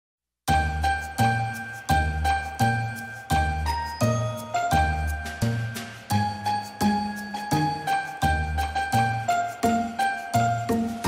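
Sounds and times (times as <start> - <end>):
festive music with bell-like chimes: 0.5 - 11.0.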